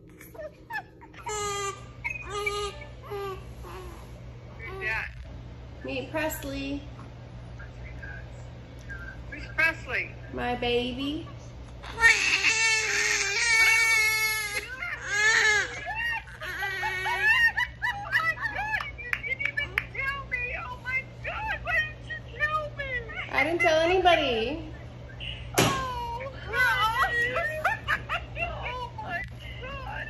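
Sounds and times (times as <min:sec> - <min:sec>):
newborn baby crying: 0:00.1 - 0:04.1, 0:11.8 - 0:17.6.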